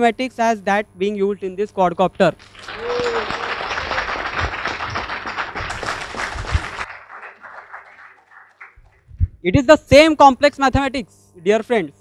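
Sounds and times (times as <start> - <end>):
audience applauding: 2.4 - 9.1.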